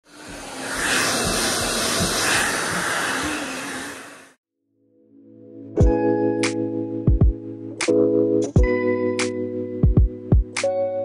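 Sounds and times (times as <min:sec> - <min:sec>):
hair dryer blowing: 0:00.0 - 0:04.4.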